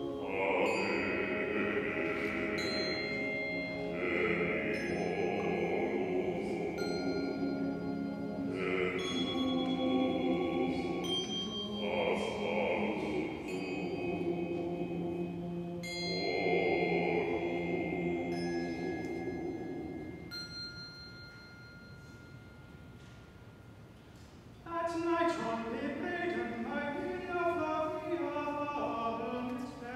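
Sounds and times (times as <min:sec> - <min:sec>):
choir singing sustained chords: 0:00.0 - 0:20.8, 0:24.7 - 0:29.9
bell-like tones: 0:00.0 - 0:24.7.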